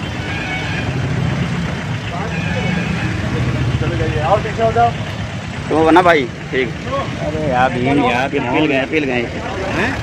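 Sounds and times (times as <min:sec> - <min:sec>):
vehicle engine idling: 0:00.0 - 0:10.0
people talking: 0:01.9 - 0:10.0.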